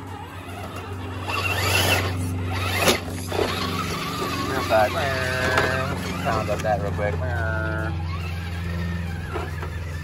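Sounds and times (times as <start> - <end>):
electric motor whining: 0.0 - 10.0.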